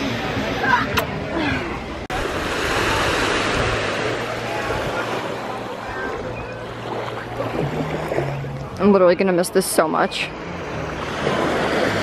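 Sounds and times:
waves washing onto beach: 0:02.1 - 0:08.5, 0:10.5 - 0:12.0.

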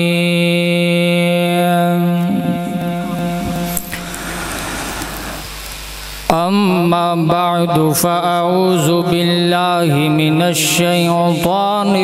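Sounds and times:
man chanting into a microphone: 0:00.0 - 0:04.3, 0:06.3 - 0:12.0
background hiss: 0:02.2 - 0:07.5.

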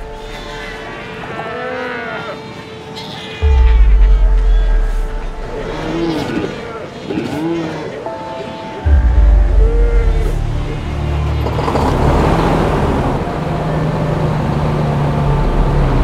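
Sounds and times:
deep bass: 0:00.0 - 0:00.8, 0:03.4 - 0:06.2, 0:08.9 - 0:16.0
seals calling: 0:00.0 - 0:11.5
music with steady drone: 0:00.0 - 0:16.0.

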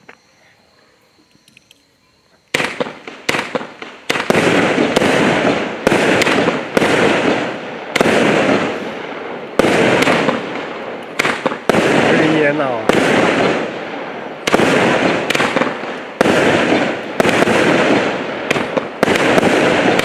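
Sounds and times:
fireworks cake shots and bursts: 0:02.5 - 0:20.0.

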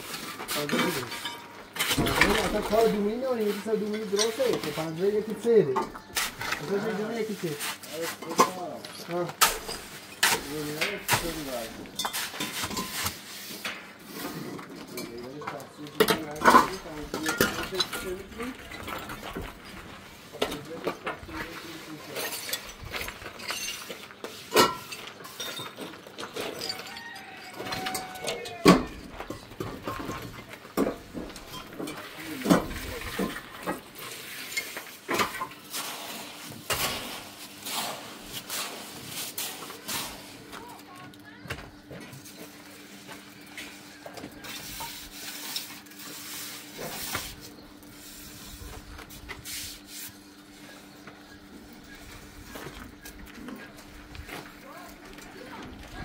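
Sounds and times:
objects clinking and knocking: 0:00.4 - 0:06.8, 0:13.7 - 0:21.3, 0:22.0 - 0:35.7
voices: 0:02.0 - 0:09.5, 0:10.2 - 0:11.9, 0:26.7 - 0:29.4, 0:39.9 - 0:41.9, 0:50.7 - 0:56.0.

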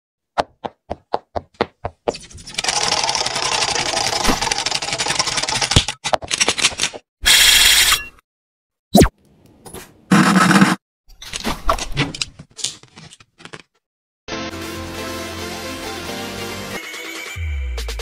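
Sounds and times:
dense scratchy noise: 0:10.1 - 0:10.8.

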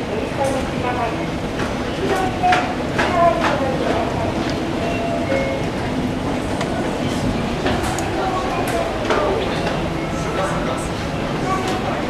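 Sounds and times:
busy station hubbub: 0:00.0 - 0:12.0.

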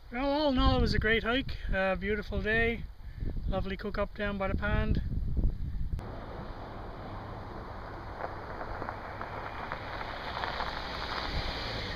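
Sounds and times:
wind rumbling on microphone: 0:00.6 - 0:03.8, 0:04.4 - 0:11.9
car tyres hissing on asphalt: 0:06.0 - 0:11.9.

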